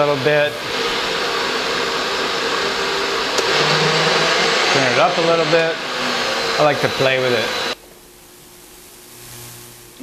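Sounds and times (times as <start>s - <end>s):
thin steady hum: 5.8s - 10.0s
room noise hiss: 6.8s - 10.0s.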